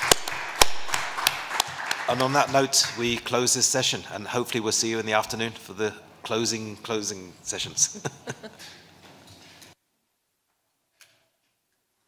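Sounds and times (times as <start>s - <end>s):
sharp hand claps: 0.0s - 3.0s
group applauding: 0.0s - 3.2s.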